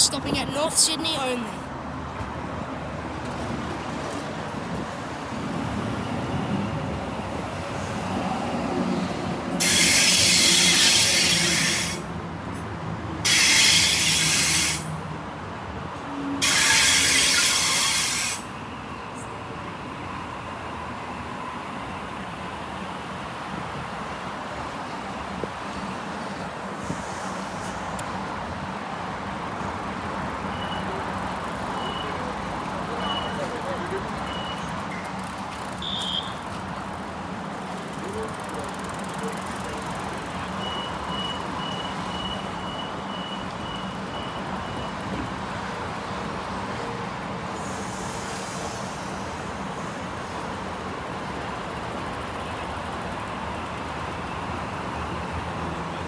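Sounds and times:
train brakes hissing and squealing: 0:09.5 - 0:12.2, 0:13.2 - 0:15.0, 0:16.3 - 0:19.3, 0:26.7 - 0:28.0, 0:30.3 - 0:36.6, 0:37.8 - 0:45.6, 0:47.4 - 0:52.7
short high beeps: 0:33.0 - 0:33.4, 0:34.2 - 0:35.0, 0:40.6 - 0:45.0.

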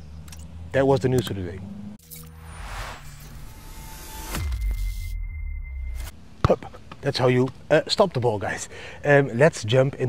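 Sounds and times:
steady high tone: 0:02.0 - 0:06.1.

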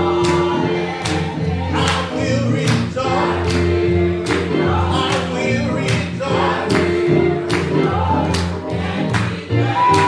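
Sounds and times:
electric keyboard: 0:00.0 - 0:10.0
gospel choir singing: 0:00.0 - 0:10.0.

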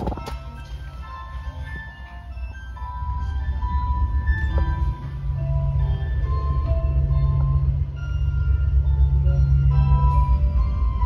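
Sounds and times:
gondola rumble and hum: 0:00.0 - 0:11.0
soft sustained music: 0:00.0 - 0:11.0.

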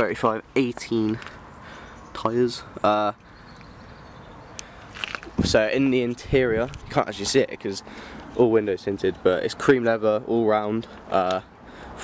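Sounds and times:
faint outdoor background noise: 0:00.0 - 0:12.0
man's voice: 0:05.3 - 0:12.0.

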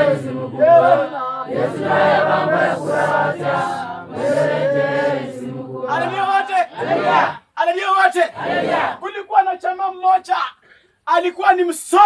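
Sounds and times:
low held voice: 0:00.0 - 0:07.3
congregation singing: 0:00.0 - 0:07.4, 0:08.3 - 0:09.0
man calling out: 0:09.0 - 0:12.0.

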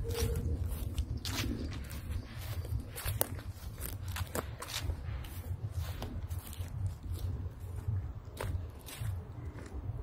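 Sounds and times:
footsteps on leaves and dirt: 0:00.0 - 0:10.0
low rumble: 0:00.0 - 0:10.0.

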